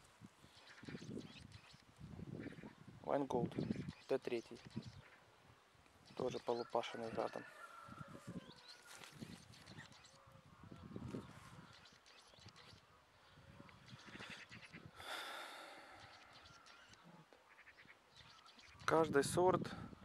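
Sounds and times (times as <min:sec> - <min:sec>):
distant animal calls: 0:06.2 - 0:18.9
leaves rustling: 0:07.5 - 0:10.2.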